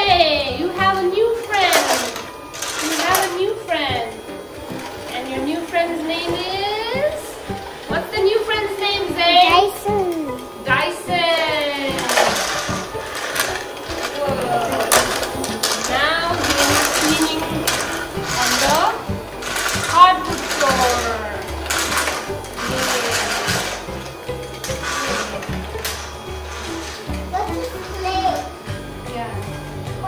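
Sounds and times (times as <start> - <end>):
background music: 0.0 - 30.0
toy vacuum motor whirring: 0.0 - 30.0.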